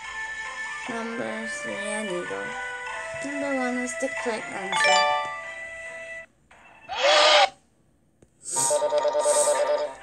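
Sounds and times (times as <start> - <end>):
jingle with warbling trill: 4.7 - 5.6.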